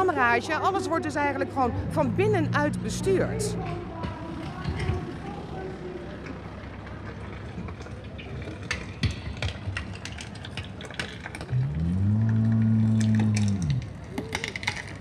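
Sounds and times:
loud low moaning tone: 0:01.6 - 0:04.0, 0:11.5 - 0:13.9.

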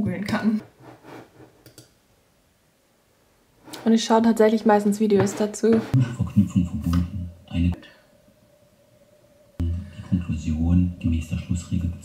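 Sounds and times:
computer mouse clicking: 0:01.6 - 0:02.0.

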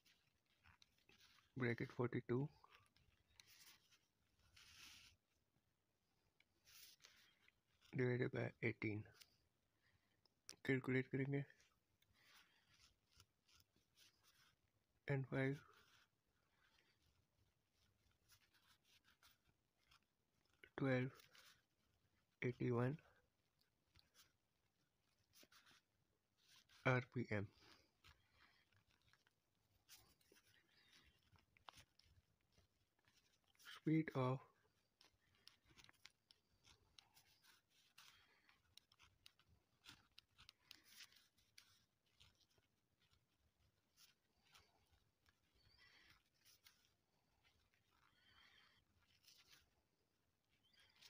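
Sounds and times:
pen scratching on paper: 0:34.6 - 0:51.0.

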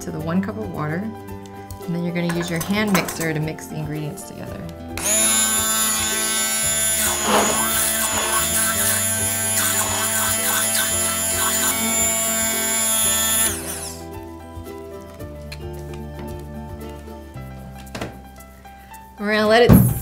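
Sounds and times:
background music: 0:00.0 - 0:20.0
immersion blender motor whine: 0:05.0 - 0:14.0.

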